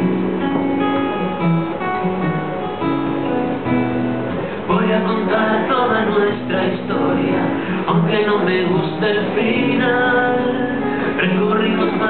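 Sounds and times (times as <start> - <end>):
acoustic guitar strumming: 0.0 - 12.0
man singing: 4.6 - 12.0.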